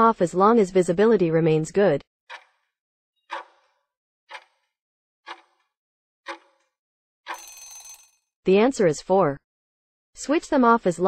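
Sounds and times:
timer ring: 7.3s - 8.2s.

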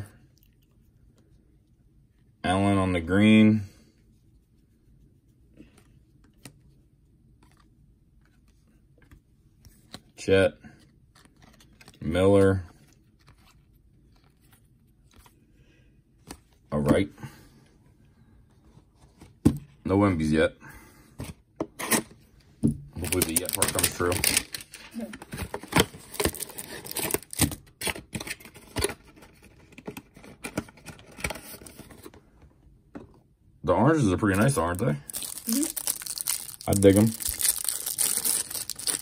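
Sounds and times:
trading cards handled on table: 7.3s - 10.2s, 10.8s - 12.1s
trading cards flipped by hand: 11.1s - 12.0s.

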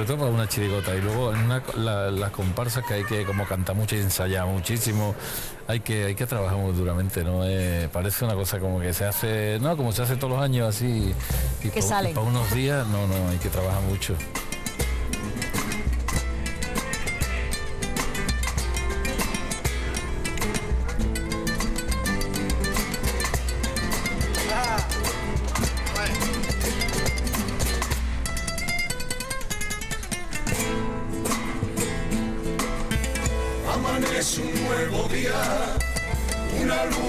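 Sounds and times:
flamenco guitars strumming: 9.6s - 37.0s.

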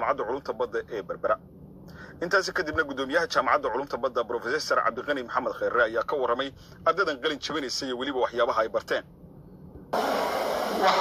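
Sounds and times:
television broadcast with voices: 2.2s - 9.1s, 10.0s - 11.0s
low hum: 9.0s - 11.0s.

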